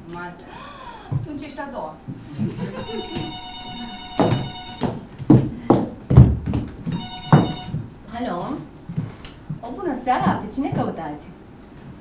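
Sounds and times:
telephone ringing: 2.7 - 5.1, 6.9 - 7.8
heavy thumps on stage floor: 4.2 - 7.8.

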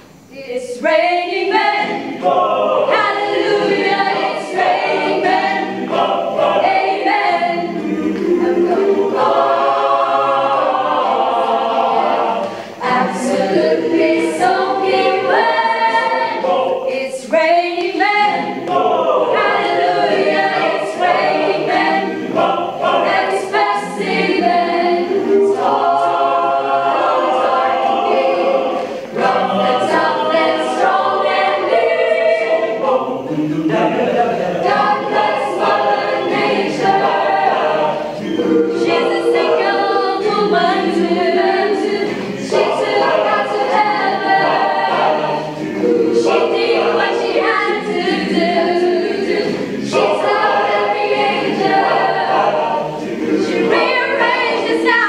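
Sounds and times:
choir singing a cappella: 0.0 - 55.0
singers breathing: 12.4 - 12.8, 28.7 - 29.1.

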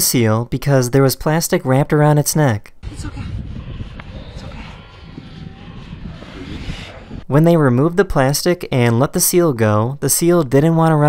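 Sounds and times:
wind buffeting microphone: 2.8 - 7.3.

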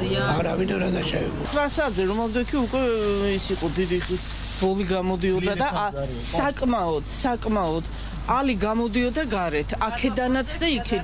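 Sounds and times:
woman talking: 5.5 - 11.0.

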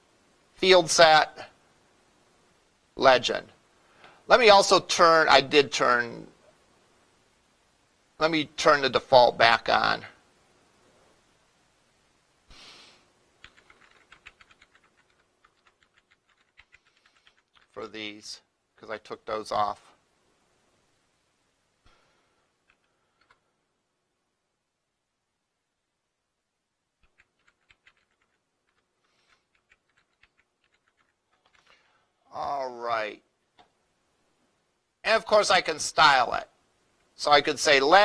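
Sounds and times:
computer keyboard keystrokes: 13.4 - 17.8, 27.0 - 31.7.

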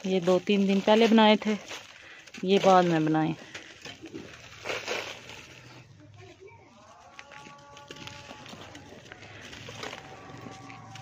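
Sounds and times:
dried mud clumps crunching: 0.0 - 11.0.

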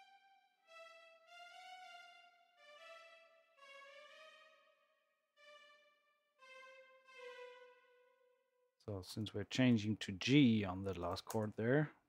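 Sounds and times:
sampled violins playing held notes: 0.0 - 4.6, 6.4 - 8.1.

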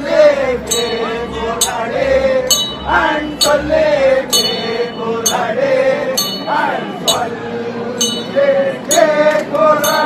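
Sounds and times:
voices chanting: 0.0 - 10.0
metal percussion clinking: 0.7 - 1.8, 2.5 - 3.7, 4.3 - 5.6, 6.2 - 7.2, 8.0 - 9.1.

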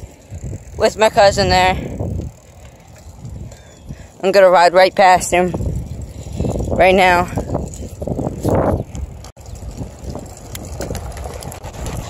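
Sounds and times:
wind noise on microphone: 0.0 - 4.2, 4.9 - 12.0
bicycle road noise on asphalt: 0.0 - 12.0.

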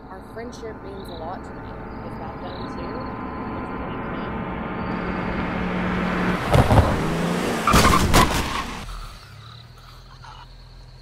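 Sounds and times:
car engine revving: 0.0 - 9.9.

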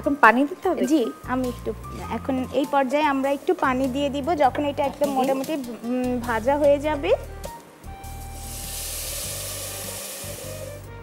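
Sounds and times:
water sizzling in hot pan: 8.1 - 10.9.

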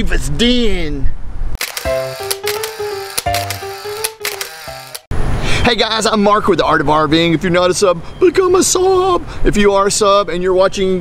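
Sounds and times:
background music with held notes: 1.6 - 5.1.

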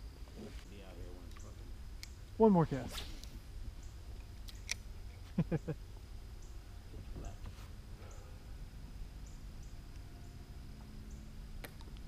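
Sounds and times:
short chuckling voice: 5.3 - 5.8.

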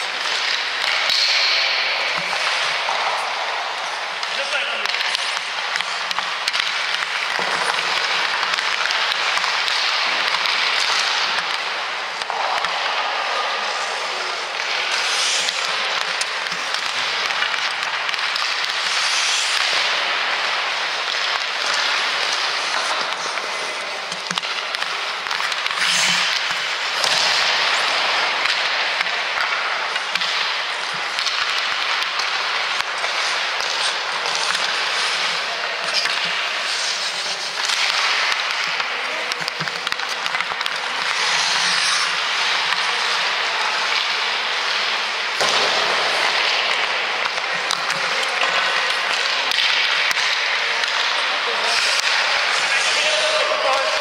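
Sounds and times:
hockey stick hitting puck: 0.0 - 54.0
pucks striking pads and boards: 0.0 - 54.0.

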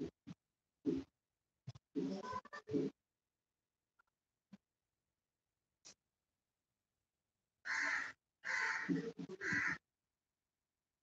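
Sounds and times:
crow cawing: 7.6 - 9.8.

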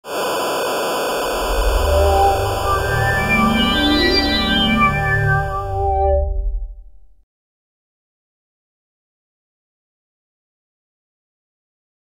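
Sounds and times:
tv static hiss: 0.0 - 5.2
low rumble: 1.2 - 7.2.

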